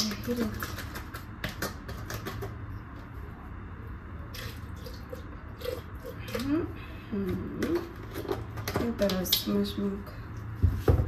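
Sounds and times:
steady low hum: 0.0 - 11.0
milk pouring into glass jug: 4.2 - 6.8.

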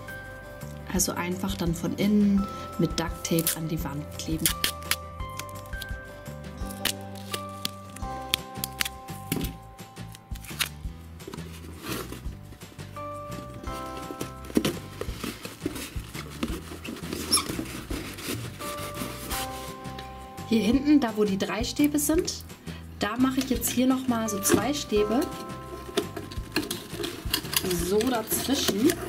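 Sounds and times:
background music with held notes: 0.0 - 29.0
duct tape tearing: 4.4 - 5.9, 6.6 - 12.2, 25.8 - 29.0.

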